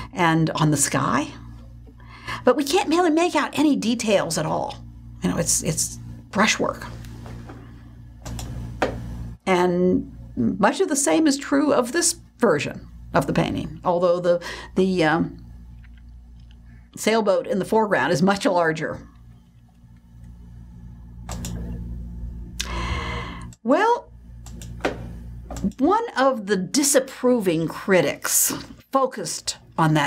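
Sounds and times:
low electrical hum: 0.0s - 30.0s
soft breath: 22.6s - 23.5s.

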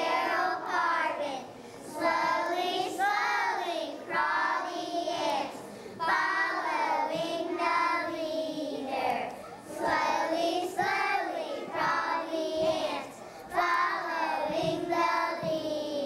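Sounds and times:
children singing: 0.0s - 16.0s.

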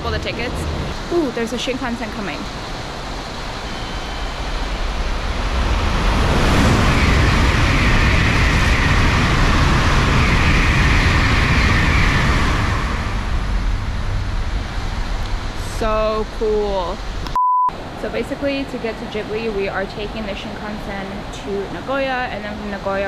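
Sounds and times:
bullet train passing at speed: 0.0s - 16.1s.

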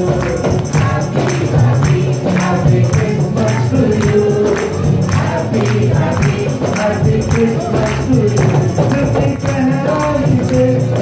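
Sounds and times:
acoustic guitar: 0.0s - 11.0s
band with rhythmic percussion: 0.0s - 11.0s
man singing into microphone: 0.0s - 11.0s.

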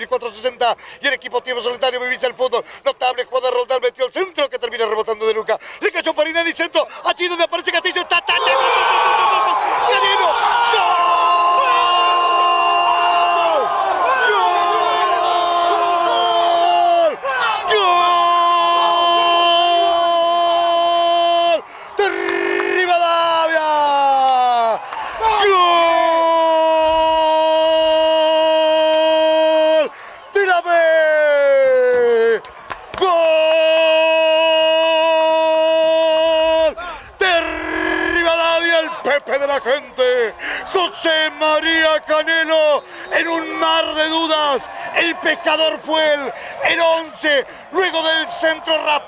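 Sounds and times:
man's drawn-out goal shout: 7.3s - 32.4s, 33.0s - 49.0s
crowd cheering: 7.6s - 49.0s
commentator's drawn-out goal cry: 33.0s - 49.0s.

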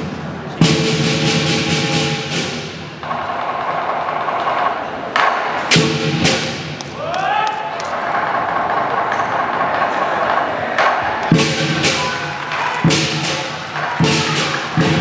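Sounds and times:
drum beating: 0.6s - 15.0s.

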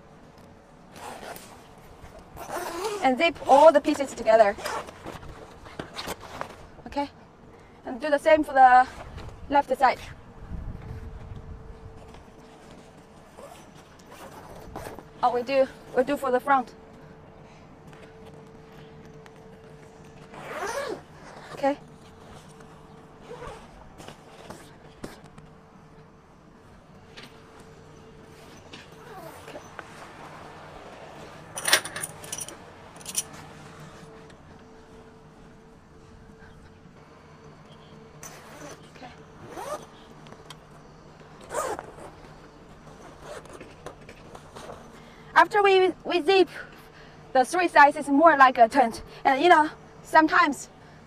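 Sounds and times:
zipper being pulled: 0.9s - 1.6s, 2.3s - 6.5s, 13.3s - 15.1s, 20.2s - 21.7s, 23.2s - 24.7s, 28.3s - 29.8s, 38.2s - 39.9s, 41.4s - 42.2s, 42.9s - 44.8s.

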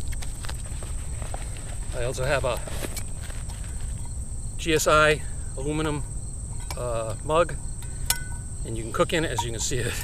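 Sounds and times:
crickets chirring: 0.0s - 10.0s
low wind rumble: 0.0s - 10.0s.

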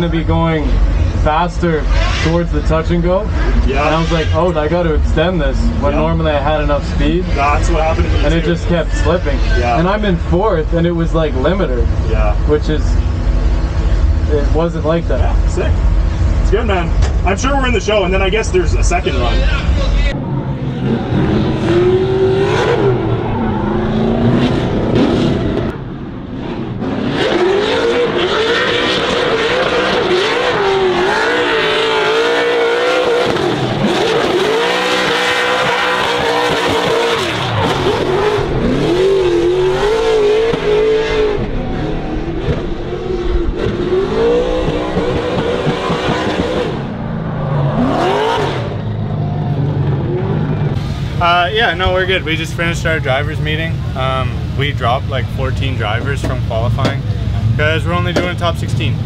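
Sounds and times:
car engine revving hard: 0.0s - 16.8s, 20.6s - 25.8s, 26.4s - 59.0s
tyres spinning and squealing: 27.9s - 41.2s.

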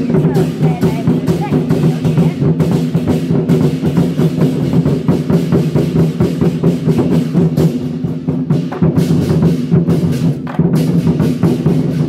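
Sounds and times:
large barrel drums beating: 0.0s - 12.0s.

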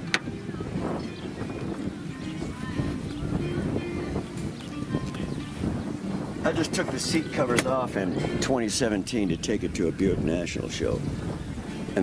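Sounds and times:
faint background music: 0.0s - 12.0s
wind on microphone: 0.0s - 12.0s.

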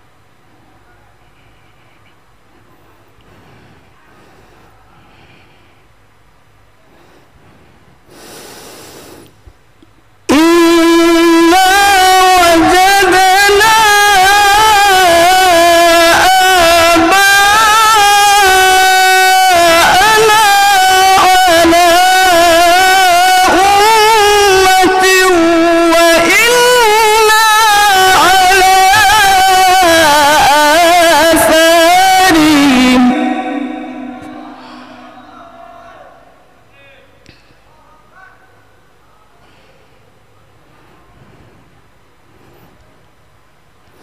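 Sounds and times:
faint hall murmur: 0.0s - 9.6s, 32.3s - 44.0s
breath rush on microphone: 2.7s - 5.9s
amplified voice reciting melismatically: 10.3s - 37.0s.

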